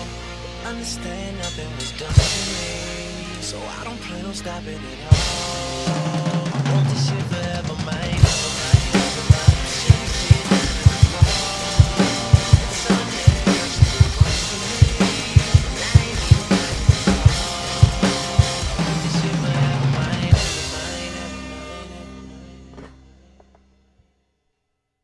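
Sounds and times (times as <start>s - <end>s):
drum kit playing: 0.0s - 4.3s, 5.0s - 23.4s
hip-hop backing track: 0.0s - 23.3s.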